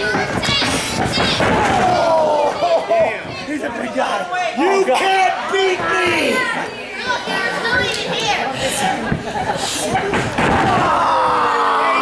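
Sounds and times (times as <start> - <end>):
long falling shout: 10.5 - 12.0.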